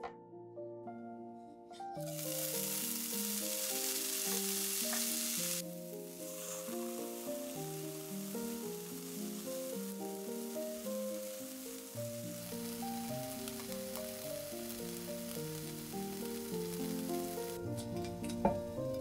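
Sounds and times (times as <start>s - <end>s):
background music: 0.0s - 19.0s
bacon sizzling in a frying pan: 2.0s - 18.3s.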